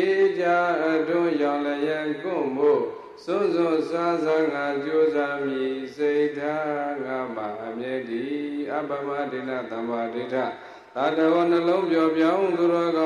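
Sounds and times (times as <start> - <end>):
man chanting into microphone: 0.0 - 13.0.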